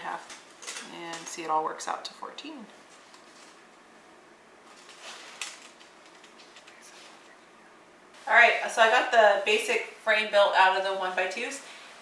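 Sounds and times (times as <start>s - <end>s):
tape measure scraping rustle: 4.7s - 7.2s.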